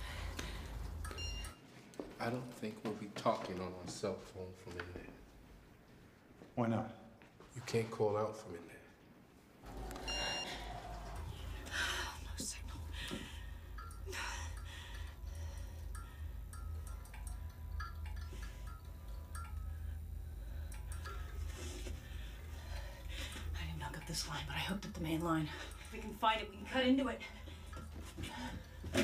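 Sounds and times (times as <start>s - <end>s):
low steady drone: 9.6s - 29.0s.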